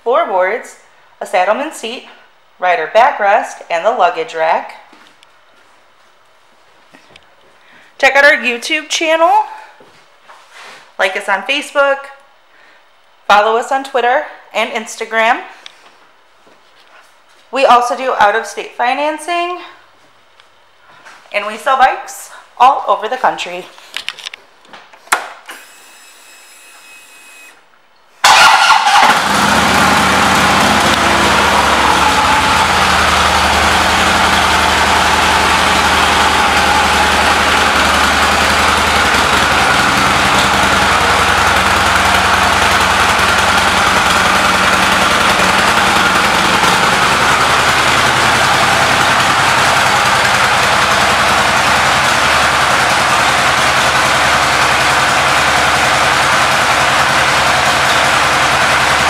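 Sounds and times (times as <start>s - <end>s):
motorcycle engine starting and idling: 28.2s - 59.0s.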